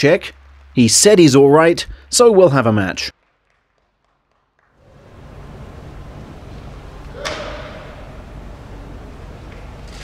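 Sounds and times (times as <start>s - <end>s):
low hum of large hall: 0.0s - 10.0s
sharp slap echoing: 7.1s - 8.1s.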